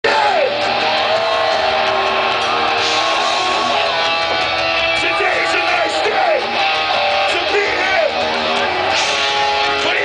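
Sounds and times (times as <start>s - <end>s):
distorted electric guitars: 0.0s - 10.0s
live heavy metal band: 0.0s - 10.0s.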